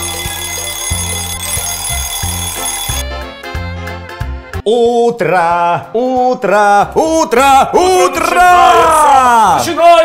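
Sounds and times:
alarm clock bell ringing: 0.0 - 3.0.

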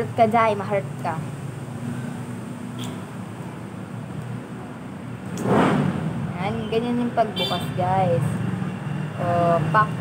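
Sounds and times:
street traffic hum: 0.0 - 10.0
rush of noise: 5.1 - 6.4.

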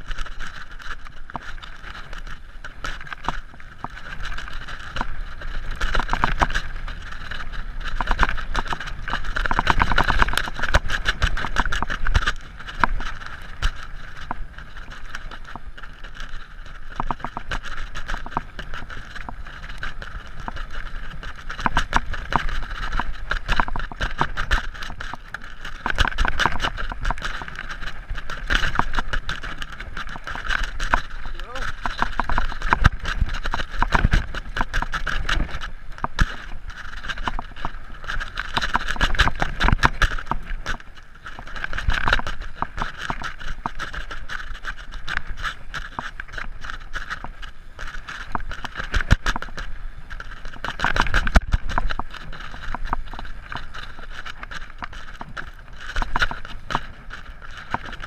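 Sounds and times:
bike rattling and clicking: 0.0 - 58.0
rush of riding noise: 0.0 - 58.0.

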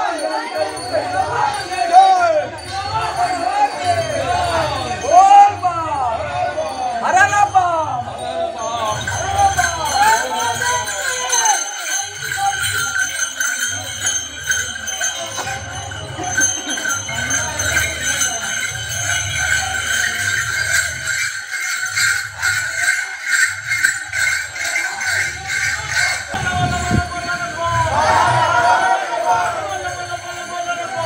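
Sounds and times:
small bells jingling: 0.0 - 31.0.

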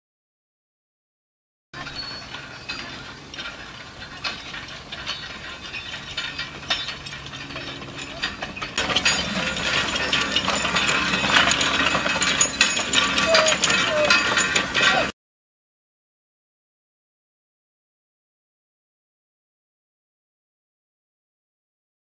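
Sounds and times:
metal farm implement rattling: 1.8 - 15.1.

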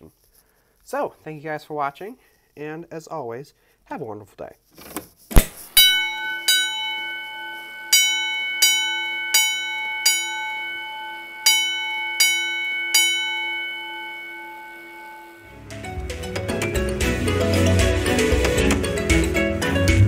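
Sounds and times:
fire alarm bell strokes: 5.6 - 15.5
music: 15.4 - 20.0.

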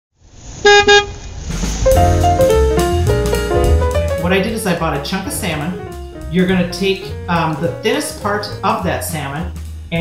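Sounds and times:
hiss of noise: 0.2 - 2.3
vehicle horn toots: 0.6 - 1.2
music: 1.5 - 10.0.

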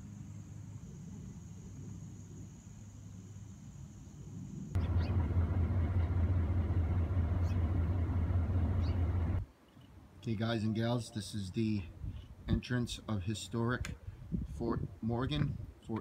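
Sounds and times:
faint low hum: 0.0 - 13.2
vehicle engine low rumble: 4.8 - 9.4.

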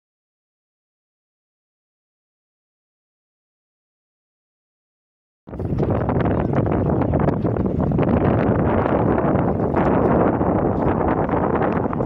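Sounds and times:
wind blowing across microphone: 5.5 - 12.0.

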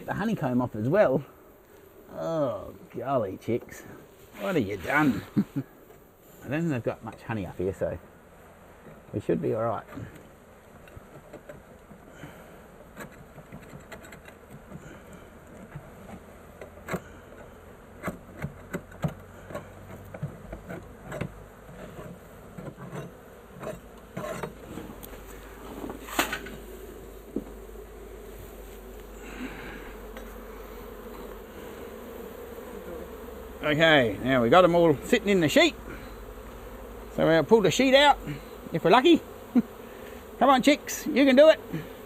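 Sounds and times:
honey bee swarm buzzing: 0.0 - 42.0
knocks and scrapes on wood: 12.9 - 14.9, 18.0 - 26.6.

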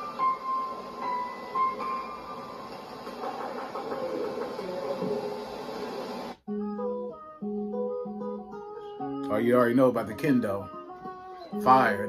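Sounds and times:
music with held notes: 0.0 - 3.0, 6.5 - 12.0
guitar picked and strummed: 6.5 - 12.0.

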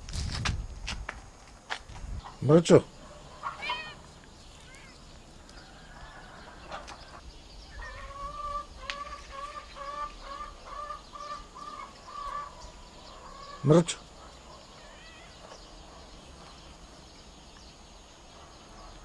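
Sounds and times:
bird calling: 2.2 - 19.0.

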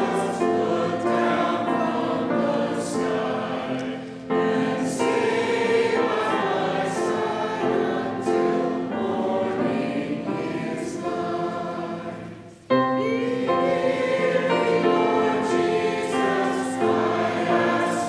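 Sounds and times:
choir singing sustained notes: 0.0 - 18.0.

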